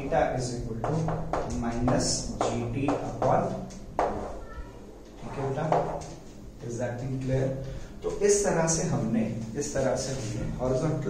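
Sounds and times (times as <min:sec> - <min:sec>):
man speaking: 0:00.0 - 0:04.2, 0:05.2 - 0:11.0.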